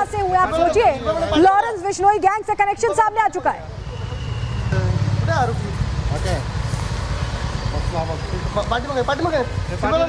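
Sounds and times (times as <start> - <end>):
vehicle engine rumbling: 3.6 - 10.0
people talking: 4.8 - 6.4, 7.7 - 10.0.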